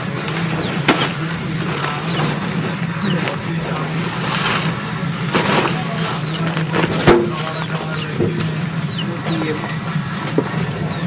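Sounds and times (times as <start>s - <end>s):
plastic tarpaulin rustling: 0.0s - 8.2s
low engine hum: 0.0s - 11.0s.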